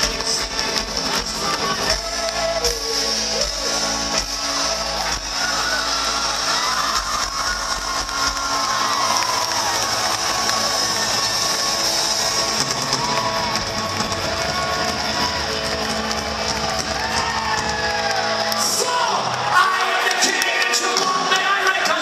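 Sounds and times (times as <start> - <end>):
audience cheering and shouting: 0.0 - 22.0
punk rock band playing live: 0.0 - 22.0.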